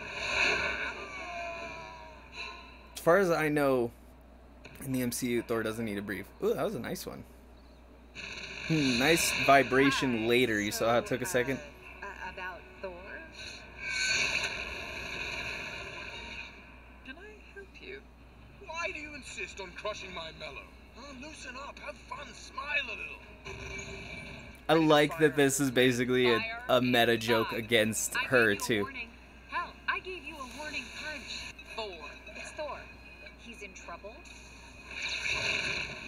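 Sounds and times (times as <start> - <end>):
cartoon dialogue: 24.7 - 31.3.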